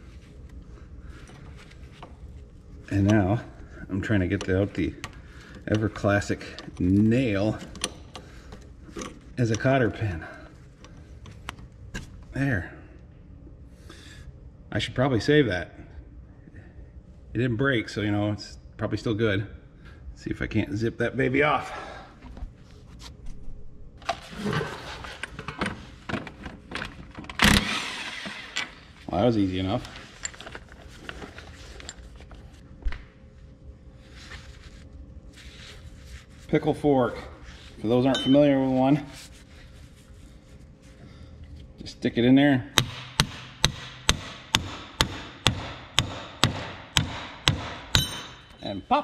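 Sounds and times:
tools clicking and scraping: 4.3s - 9.8s
impact wrench spinning: 27.5s - 28.8s
hammer striking metal fork: 38.1s - 38.4s, 42.8s - 48.7s.

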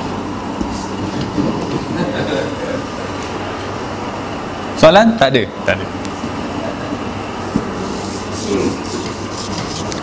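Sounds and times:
air conditioning hum: 0.0s - 10.0s
marker squeaking on whiteboard: 8.0s - 10.0s.

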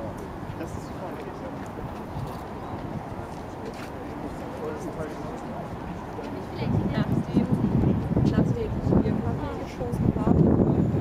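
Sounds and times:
people talking outdoors: 0.0s - 11.0s
low microphone rumble: 5.6s - 11.0s.

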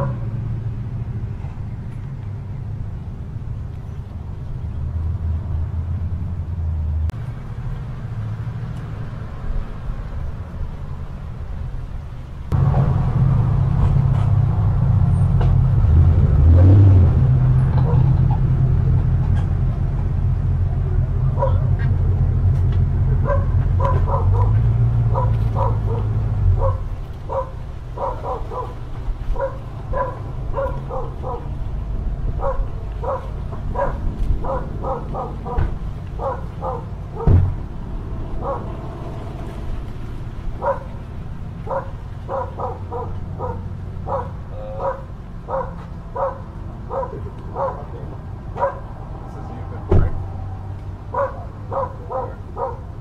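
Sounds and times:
dog barking: 0.0s - 0.2s, 21.3s - 21.7s, 23.2s - 31.6s, 32.4s - 37.4s, 38.4s - 38.7s, 40.6s - 41.0s, 41.7s - 48.0s, 48.6s - 48.9s, 51.1s - 52.9s.

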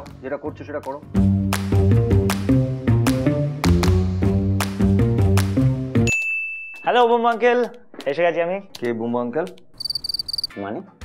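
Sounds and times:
title music with steady beat: 1.0s - 10.6s.

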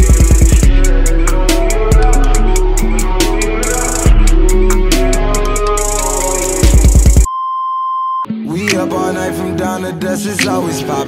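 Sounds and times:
hip-hop music with heavy bass: 0.0s - 7.3s, 8.3s - 11.0s.

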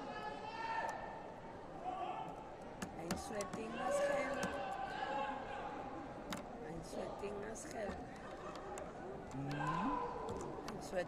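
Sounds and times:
voices in a large hall: 0.0s - 11.0s.

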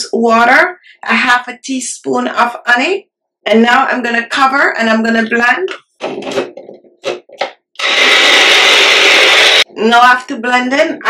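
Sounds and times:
blender motor whirring: 7.8s - 9.7s.

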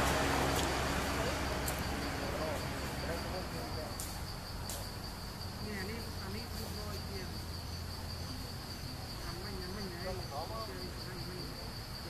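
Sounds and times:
insects trilling: 0.0s - 12.0s.

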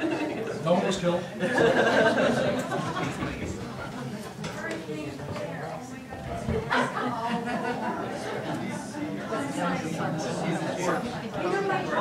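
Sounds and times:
murmur of people chatting: 0.0s - 12.0s.

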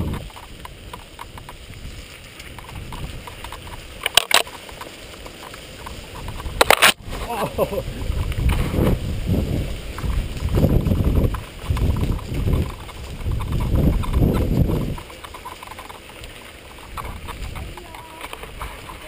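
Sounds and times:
bike tyre and frame rattling: 0.0s - 19.0s
branches scraping camera: 0.0s - 19.0s.

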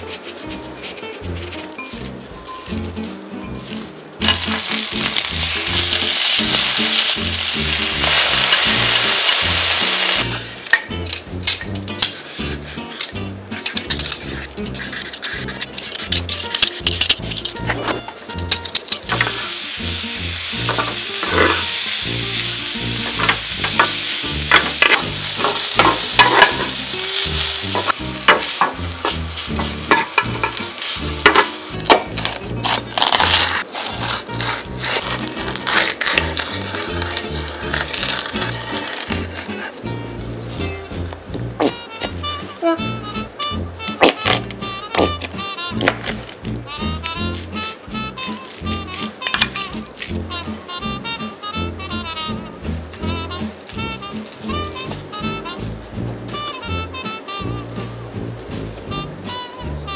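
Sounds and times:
food sizzling in hot oil: 4.2s - 10.6s, 19.0s - 39.1s
wooden spatula scraping pan: 20.6s - 22.4s, 23.0s - 39.8s.

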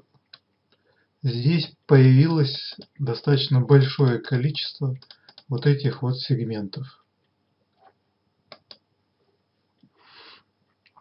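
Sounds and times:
computer mouse clicks: 5.0s - 5.5s, 8.5s - 8.8s.

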